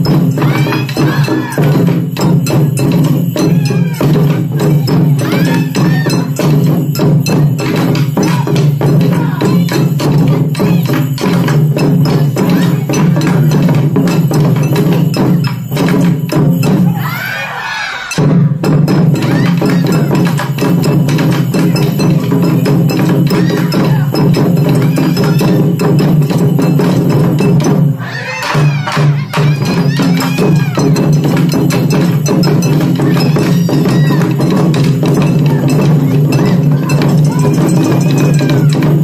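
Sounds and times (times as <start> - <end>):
drum ensemble playing fast rhythm: 0.0 - 39.0
drummer shouting a call: 0.3 - 2.0, 3.4 - 6.6, 7.8 - 11.3, 12.1 - 13.6, 19.2 - 20.6, 23.2 - 25.8, 28.0 - 31.1, 32.6 - 39.0.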